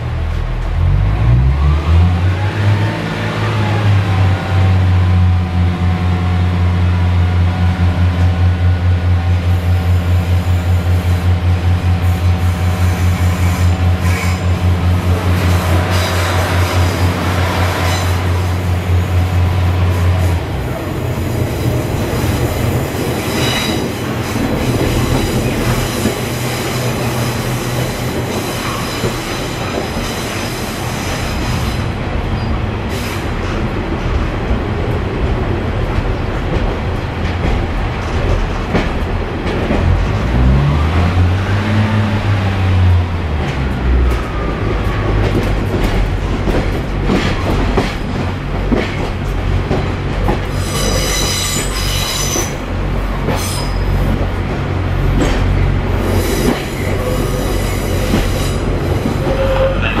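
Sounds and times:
high-pitched wheel squeal: 50.5s - 52.6s, 56.2s - 60.0s.

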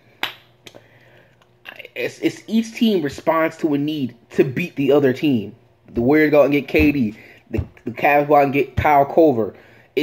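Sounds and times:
finger snap: 0.2s - 0.8s.

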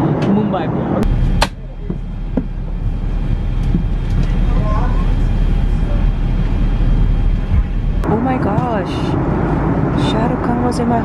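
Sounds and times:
airliner cabin rumble: 0.0s - 11.0s.

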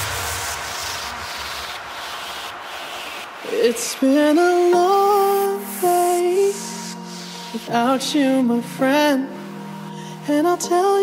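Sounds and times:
faint low rumble: 0.0s - 4.9s
white noise hiss: 0.0s - 11.0s.

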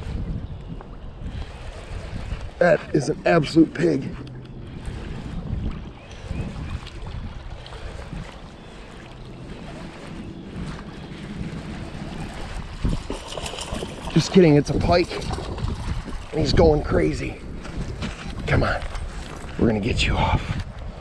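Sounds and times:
wind on microphone: 0.0s - 21.0s.

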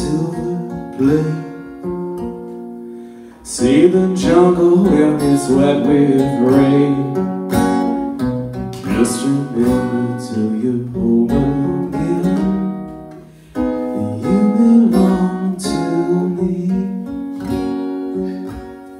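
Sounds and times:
acoustic guitar strumming: 0.0s - 18.9s.

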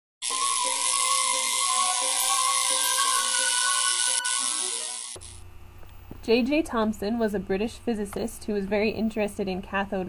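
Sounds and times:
tesla coil electrical buzz: 0.2s - 5.5s.

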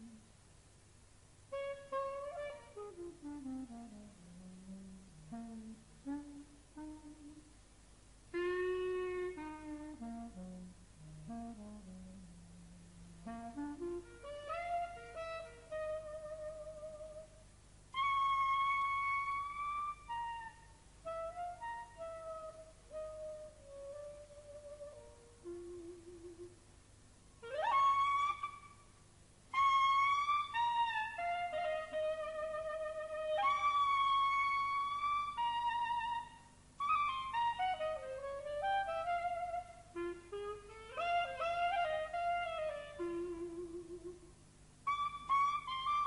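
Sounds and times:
clarinet playing softly: 0.0s - 0.4s, 1.4s - 26.7s, 27.3s - 46.0s.

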